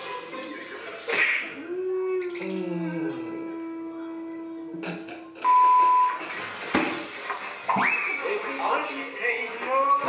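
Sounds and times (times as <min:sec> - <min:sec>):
held musical note: 0:01.6 - 0:05.6.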